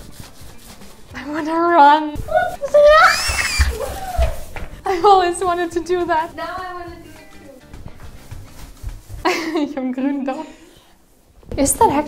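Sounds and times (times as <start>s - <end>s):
woman screaming playfully: 2.3s - 4.5s.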